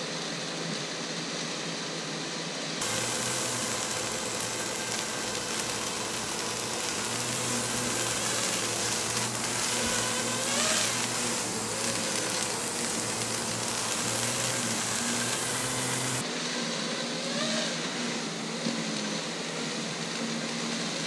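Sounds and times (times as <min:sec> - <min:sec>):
hose spray hissing: 0:02.8 - 0:16.2
drone motors buzzing: 0:02.8 - 0:17.8.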